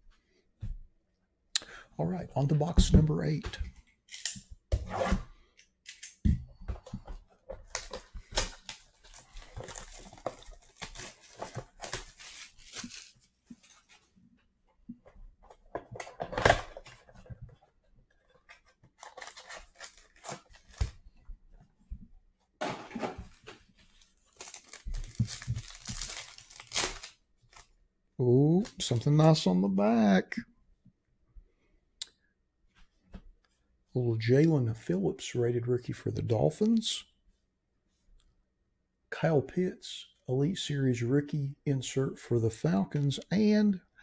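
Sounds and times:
man's voice: 1.6 - 3.7, 28.2 - 30.4, 39.2 - 43.8
plastic wrap and cardboard tearing: 7.7 - 13.9, 19.0 - 20.9, 24.2 - 27.7
card pack wrapper crinkling: 7.7 - 14.0, 19.0 - 20.9, 24.0 - 27.7.

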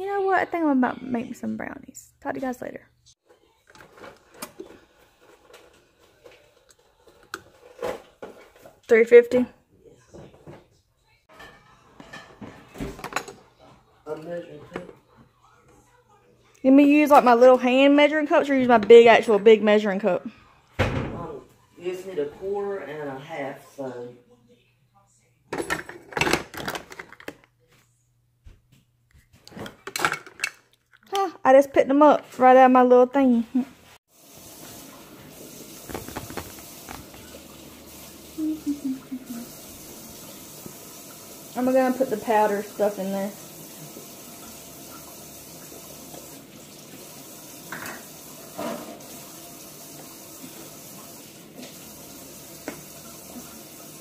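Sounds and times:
kitchen utensils clattering: 11.3 - 13.8, 25.5 - 27.4, 29.5 - 30.7, 35.7 - 37.5.

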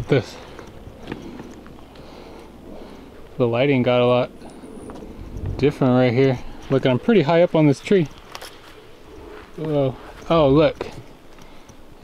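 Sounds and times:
low steady rumble: 0.0 - 8.2.

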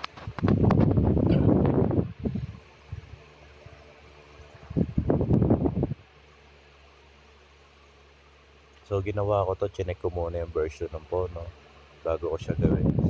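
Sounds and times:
microphone handling noise: 0.0 - 3.8, 4.6 - 6.0
faint steady hum: 0.0 - 13.0.

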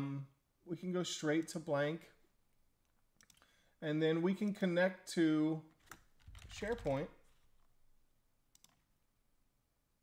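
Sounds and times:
man talking: 0.0 - 2.2, 3.8 - 5.7, 6.5 - 7.2
computer mouse clicks: 2.9 - 3.5, 8.5 - 8.9.

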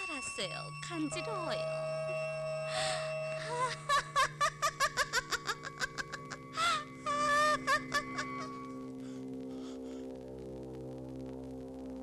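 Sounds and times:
droning film music: 0.0 - 12.0
woman laughing high-pitched: 3.4 - 8.5.

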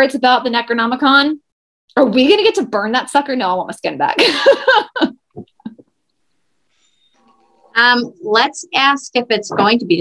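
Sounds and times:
woman laughing: 4.2 - 5.8.

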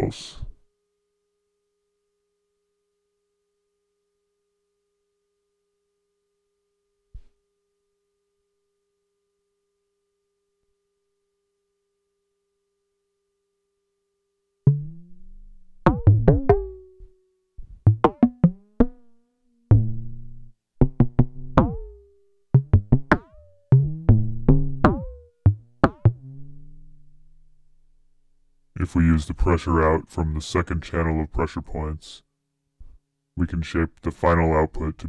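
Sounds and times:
electronic bongo hits: 14.7 - 17.0, 17.8 - 19.1, 19.7 - 26.8.

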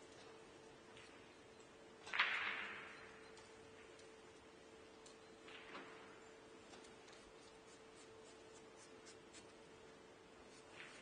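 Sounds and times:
faint steady hum: 0.0 - 11.0
chalk scratching on cue tip: 7.0 - 9.6.

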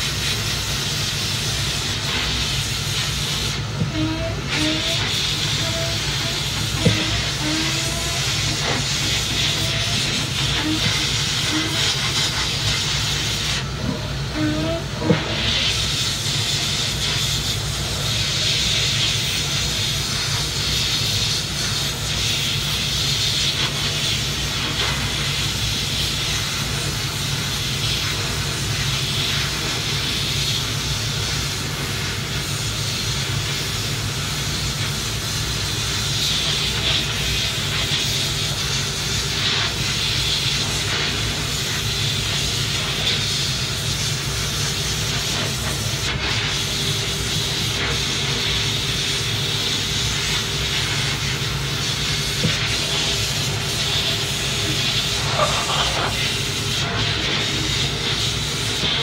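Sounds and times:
bead blasting gun hissing: 0.0 - 58.9.

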